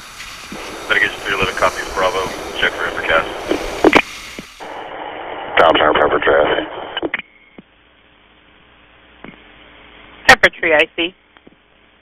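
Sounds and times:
radio channel hiss: 0.0s - 7.4s
faint hum: 0.0s - 12.0s
radio voice transmission: 0.6s - 7.2s.

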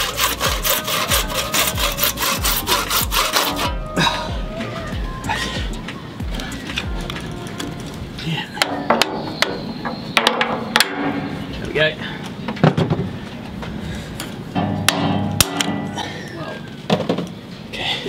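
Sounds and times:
metallic ringing: 14.5s - 16.2s
hard knocks on metal: 14.6s - 15.9s.

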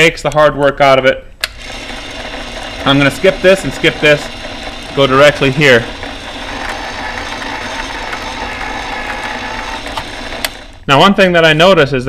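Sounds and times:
electric motor running: 1.5s - 10.9s.

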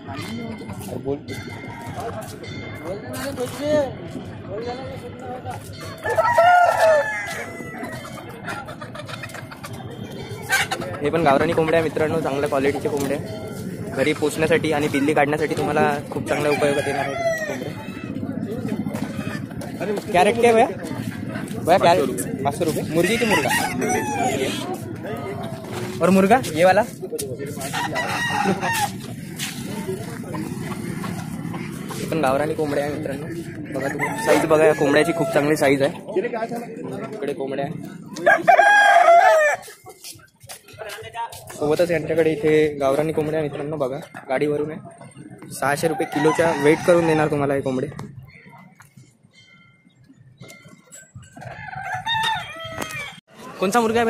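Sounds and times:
murmur of voices: 0.0s - 54.0s
rooster crowing: 6.0s - 8.2s, 16.3s - 18.0s, 23.0s - 24.7s, 27.7s - 28.9s, 33.8s - 35.7s, 38.2s - 39.7s, 45.9s - 47.4s, 51.4s - 53.2s.

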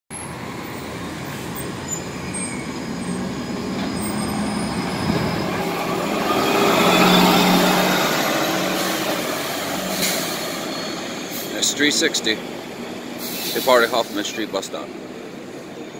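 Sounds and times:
bus pulling away: 0.1s - 15.9s.

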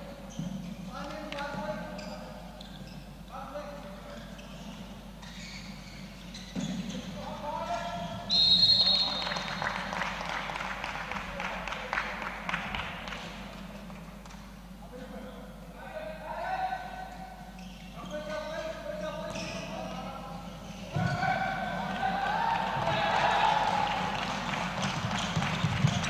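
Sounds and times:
referee's whistle blast: 8.3s - 9.4s
ball bouncing on court: 20.9s - 21.4s, 24.8s - 26.0s
players calling out: 20.9s - 26.0s.

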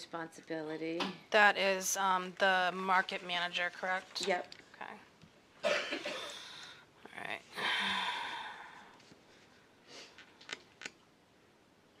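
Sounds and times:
person coughing: 5.6s - 6.5s.

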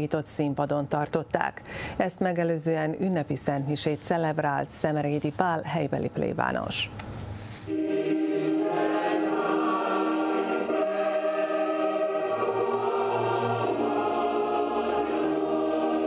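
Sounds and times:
choir singing long held notes: 7.7s - 16.0s.

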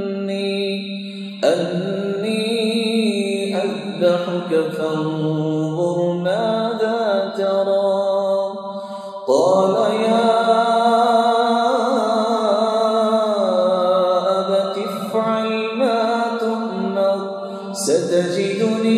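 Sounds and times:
man reciting melodically: 0.0s - 18.9s
man breathing: 8.6s - 9.3s, 17.4s - 17.8s.

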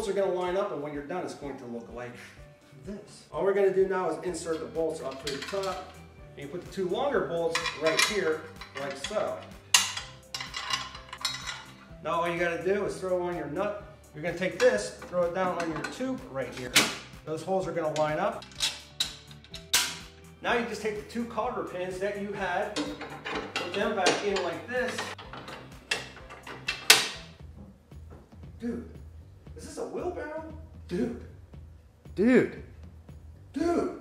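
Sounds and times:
metal bolts clinking: 4.4s - 12.4s, 14.3s - 17.1s, 17.8s - 21.0s, 21.9s - 27.4s
sharp metal clicks: 18.0s - 20.1s, 22.7s - 27.3s.

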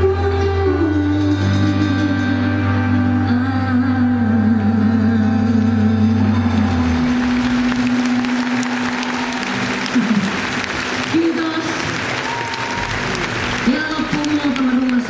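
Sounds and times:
live band playing: 0.0s - 15.0s
audience applauding: 6.4s - 15.0s.

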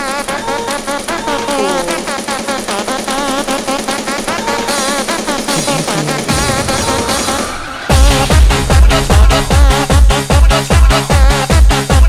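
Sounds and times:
pulsing dance beat: 0.0s - 12.0s
wavering synth lead: 0.4s - 3.6s.

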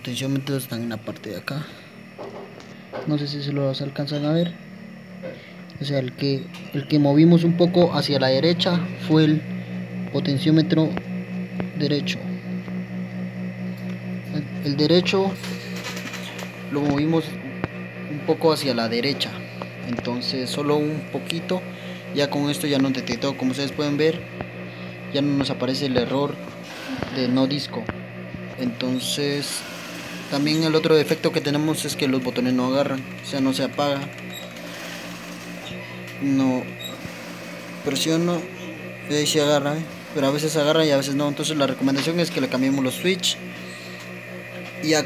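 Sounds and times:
dvd player pulsing hum: 0.0s - 45.0s.

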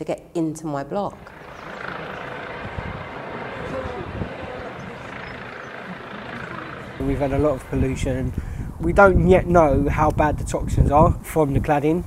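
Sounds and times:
distant engine rumble: 1.0s - 9.6s.

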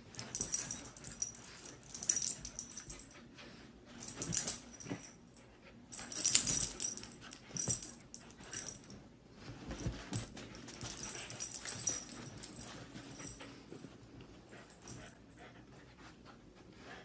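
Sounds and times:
scuffling and rustling on bed: 7.4s - 15.0s.

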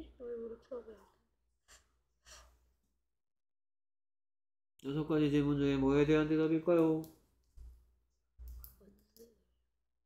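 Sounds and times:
faint breath: 1.6s - 2.8s.

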